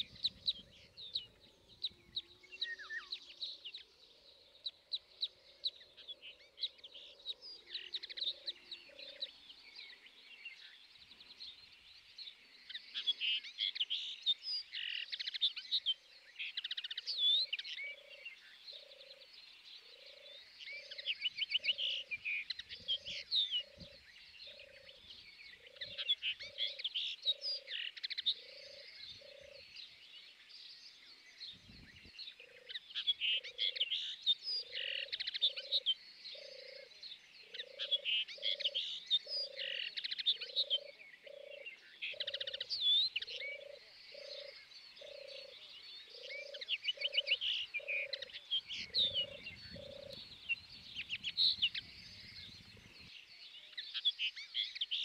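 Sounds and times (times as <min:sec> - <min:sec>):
high chirping and twittering: 0:44.1 - 0:54.9.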